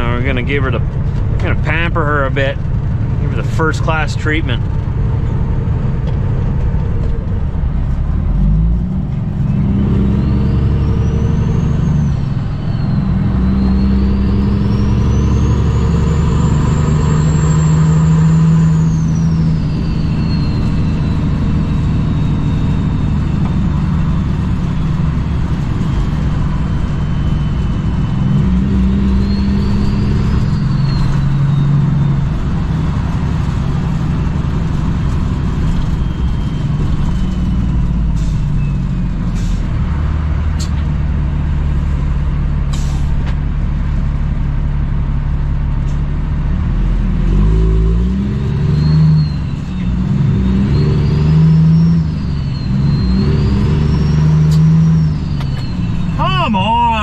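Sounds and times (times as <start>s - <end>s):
diesel truck engine under load: 0.0s - 57.0s.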